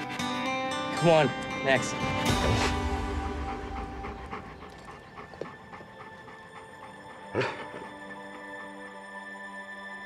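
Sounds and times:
dog panting quickly: 0:00.0 - 0:00.9, 0:02.3 - 0:09.1
background music: 0:00.0 - 0:10.0.

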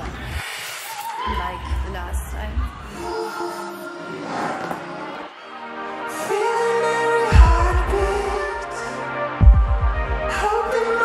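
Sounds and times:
held synthesizer chords: 0:01.3 - 0:11.0.

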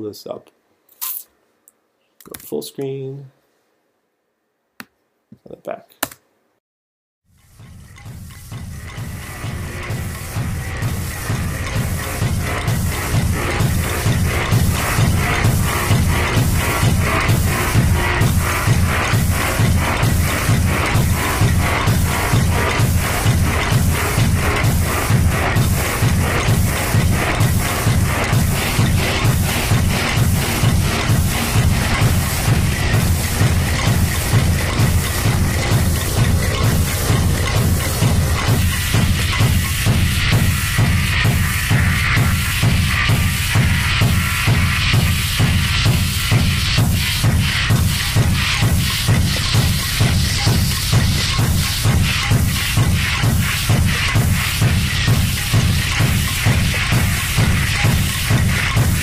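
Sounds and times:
looped electronic percussion music: 0:07.3 - 0:59.0.

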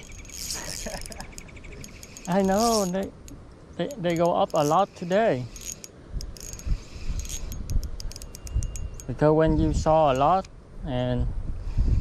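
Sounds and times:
metallic clicks of fishing reel: 0:00.0 - 0:09.2
wind on microphone: 0:05.4 - 0:12.0.

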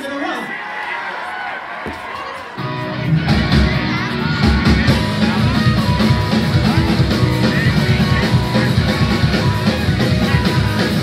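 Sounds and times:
crowd shouting: 0:00.0 - 0:11.0
punk rock band playing: 0:01.9 - 0:11.0.

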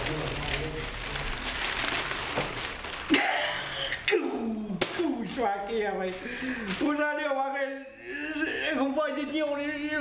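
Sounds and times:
newspaper pages rustling: 0:00.0 - 0:03.1.

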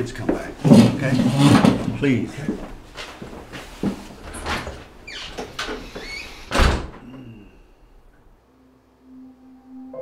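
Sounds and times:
door closing with heavy thud: 0:04.3 - 0:07.2.

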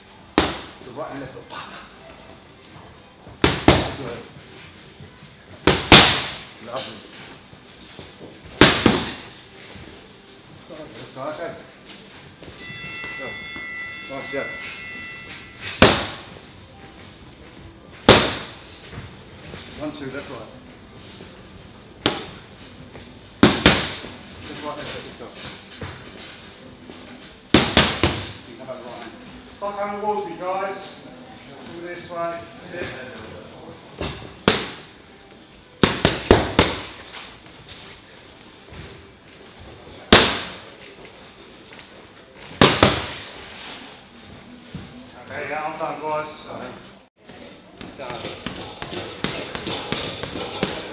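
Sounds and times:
punch slapping a pad: 0:05.7 - 0:06.4, 0:27.6 - 0:28.3
punches hitting focus mitts: 0:15.8 - 0:16.2, 0:27.5 - 0:28.4, 0:35.8 - 0:37.0.

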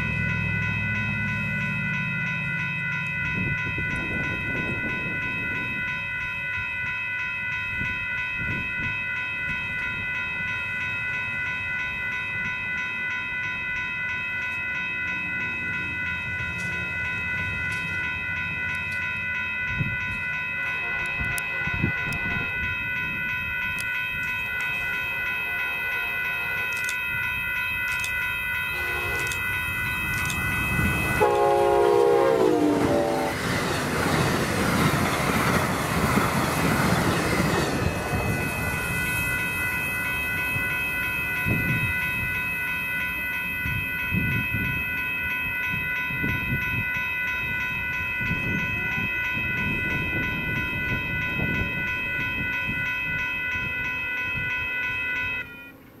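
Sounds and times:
train rushing by: 0:00.0 - 0:06.3, 0:27.9 - 0:56.0
high-pitched ringing: 0:00.0 - 0:56.0
train air horn blasts: 0:28.7 - 0:29.4, 0:31.1 - 0:33.5.

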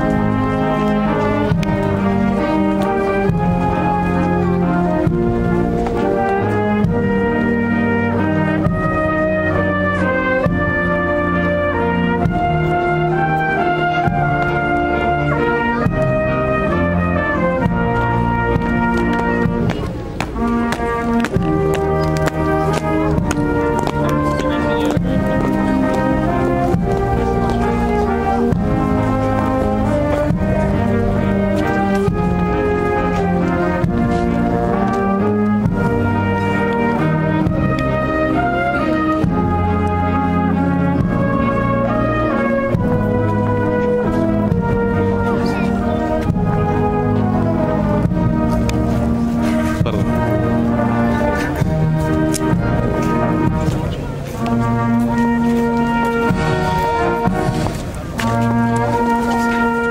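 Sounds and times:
brass band playing: 0:00.0 - 0:59.9.

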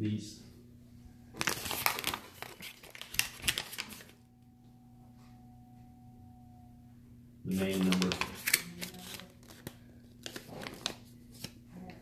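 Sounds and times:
crinkling and rustling: 0:01.4 - 0:04.2, 0:07.6 - 0:12.0
faint steady tone: 0:04.2 - 0:07.4.

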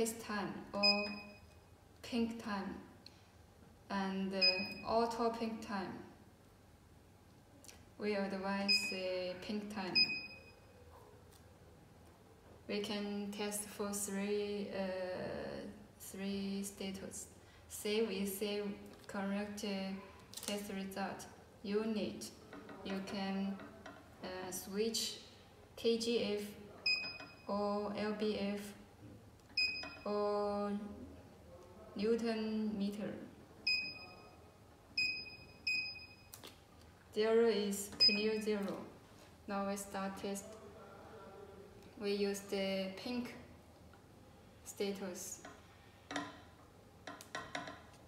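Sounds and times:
high electronic keypad beep: 0:00.8 - 0:01.5, 0:04.4 - 0:04.9, 0:09.9 - 0:10.5, 0:26.9 - 0:27.5, 0:29.6 - 0:30.1, 0:33.7 - 0:34.3, 0:35.0 - 0:36.4, 0:38.0 - 0:38.5.

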